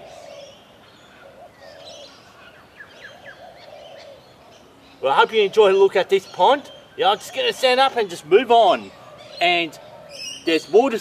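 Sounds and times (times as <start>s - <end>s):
low bird call: 0.0s - 7.8s.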